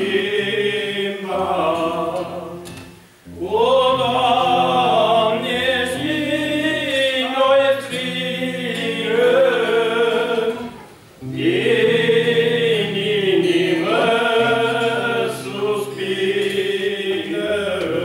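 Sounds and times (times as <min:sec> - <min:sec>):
men singing a hymn: 0:00.0 - 0:18.0.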